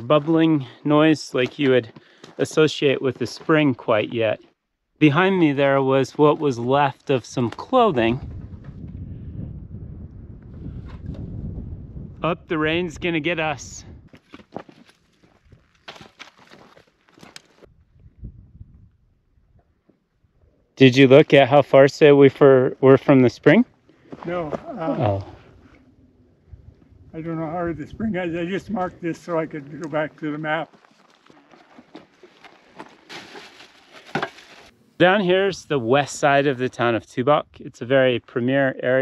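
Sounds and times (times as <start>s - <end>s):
footsteps crunching on gravel: 14.1s - 17.7s, 24.0s - 25.2s, 29.5s - 34.7s
plastic container rustling in brush: 31.3s - 34.7s.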